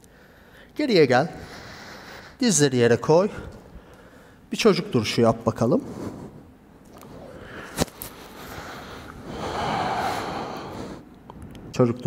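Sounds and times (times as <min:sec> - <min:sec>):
person exhaling heavily: 0:08.5 - 0:11.0.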